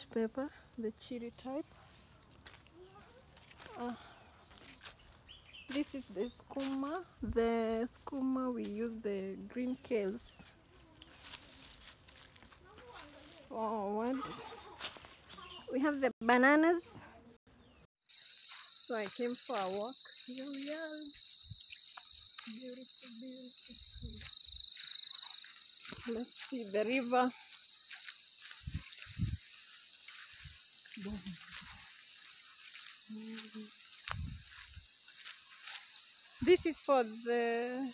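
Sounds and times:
insects chirring: 0:00.4 - 0:16.8, 0:17.6 - 0:37.9
leaves rustling against phone: 0:10.1 - 0:15.6.

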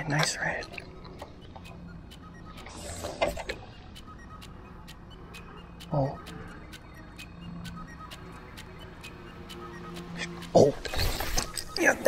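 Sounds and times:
faint ticks: 0:00.0 - 0:10.9.

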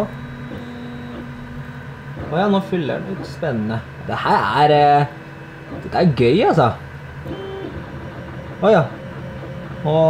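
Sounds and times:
three d printer humming: 0:00.0 - 0:10.0.

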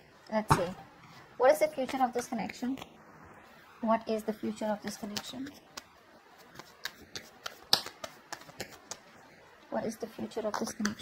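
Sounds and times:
cards being shuffled: 0:04.8 - 0:09.4.

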